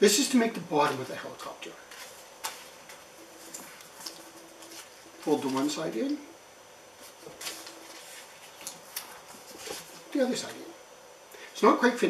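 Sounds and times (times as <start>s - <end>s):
paper rustling: 1.9s - 6.1s, 7.0s - 10.2s.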